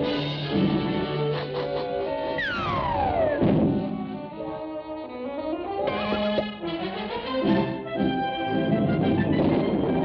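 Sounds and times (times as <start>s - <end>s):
orchestral cartoon music: 0.0s - 10.0s.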